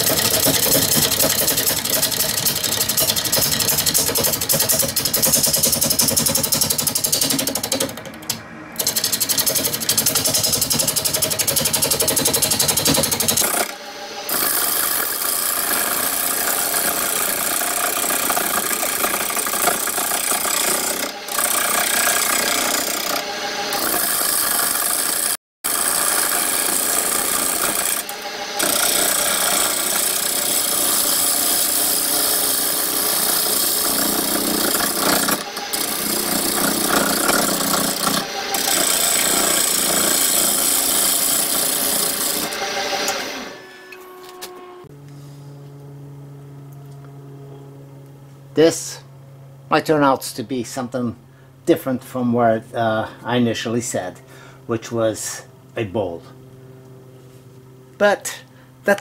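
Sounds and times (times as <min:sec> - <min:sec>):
wood lathe tool cutting wood: 0:00.0 - 0:44.9.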